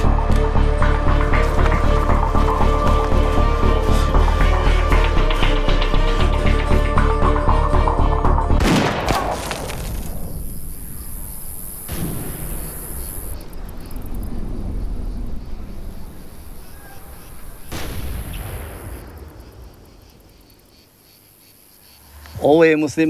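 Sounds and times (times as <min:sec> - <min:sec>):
insects chirping: 0:00.0 - 0:23.0.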